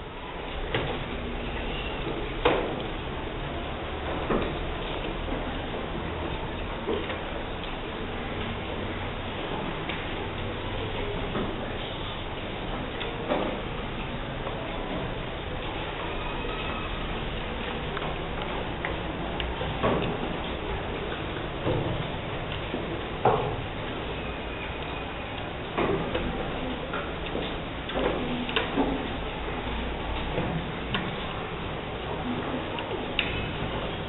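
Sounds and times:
clicks and taps on wooden desks: 17.6s - 24.1s.

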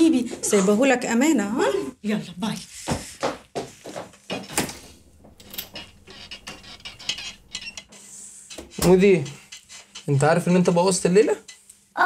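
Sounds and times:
iron steam hiss: 7.8s - 8.8s.

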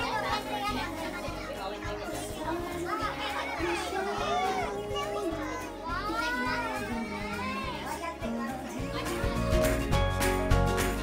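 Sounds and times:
children squealing and calling: 0.0s - 10.2s
music with long held notes: 0.1s - 11.0s.

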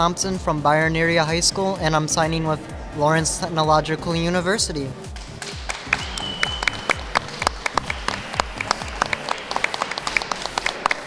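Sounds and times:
background music with low beat: 0.0s - 11.0s
people clapping: 5.0s - 11.0s.

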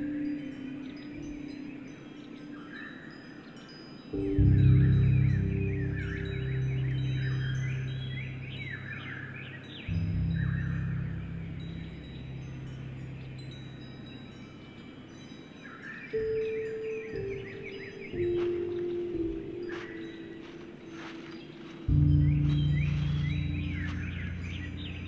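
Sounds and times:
slow piano music: 0.0s - 15.0s, 16.1s - 25.0s
birds chirping: 0.0s - 25.0s
wind chimes ringing: 0.0s - 25.0s.

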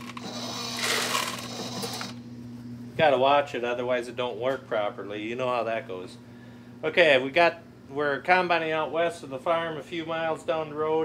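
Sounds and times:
corn kernels rattling: 0.0s - 2.1s.

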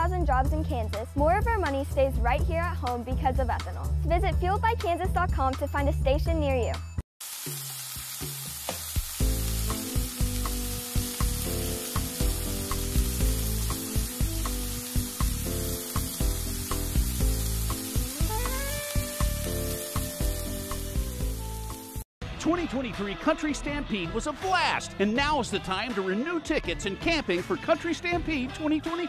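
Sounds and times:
soft background music: 0.0s - 7.0s, 7.9s - 29.0s
bacon sizzling in a frying pan: 7.2s - 22.0s.

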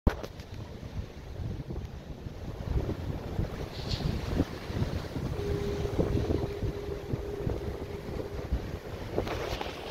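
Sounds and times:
surf on rocky shore: 0.1s - 9.9s
wind buffeting microphone: 0.1s - 9.9s
faint steady hum: 5.3s - 9.2s.

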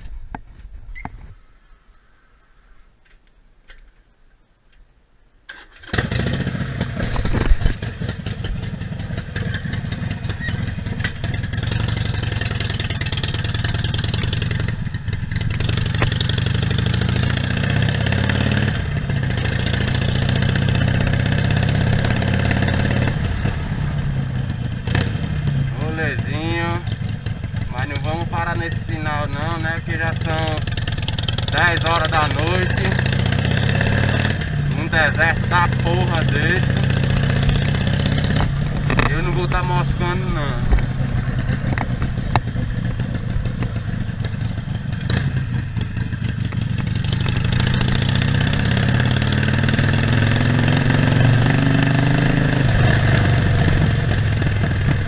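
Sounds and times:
motorcycle engine running: 5.9s - 55.0s.

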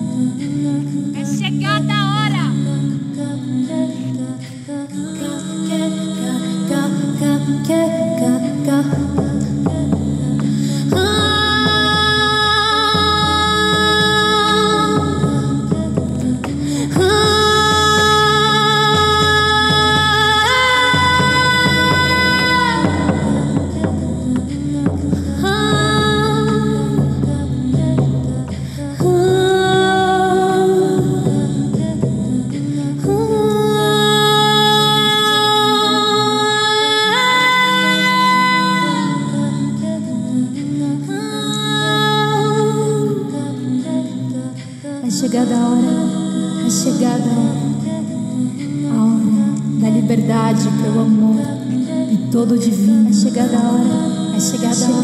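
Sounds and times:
woman singing wavering line: 0.0s - 55.0s
frame drum beats: 8.8s - 33.7s.

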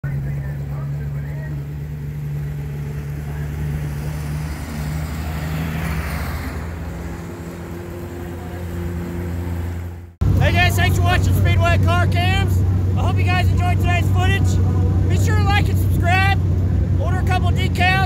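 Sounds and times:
truck driving by: 0.0s - 18.0s
vehicle engines idling: 0.0s - 18.0s.

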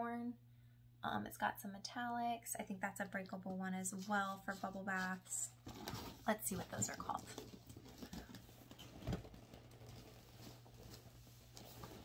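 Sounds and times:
packaging rustling: 5.6s - 12.0s.

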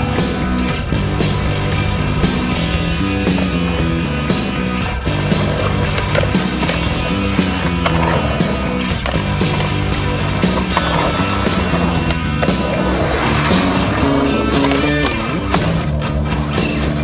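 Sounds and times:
rock music with drum beat: 0.0s - 17.0s
skateboard trucks grinding: 0.0s - 17.0s
skateboard wheels rolling: 0.0s - 17.0s.

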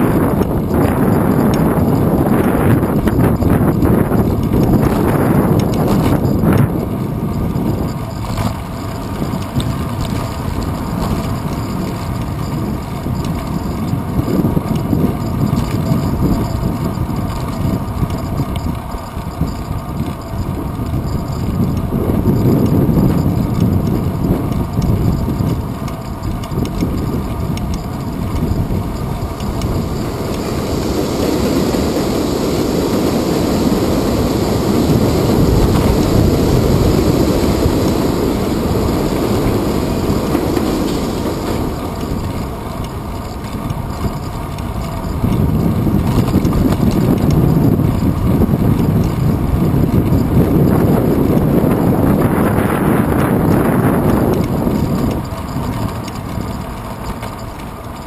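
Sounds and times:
road rumble: 0.0s - 58.0s
wind buffeting: 0.0s - 58.0s.

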